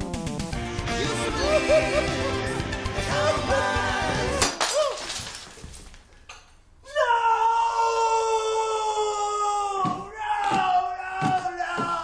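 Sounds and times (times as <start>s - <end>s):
man screaming: 6.9s - 12.0s.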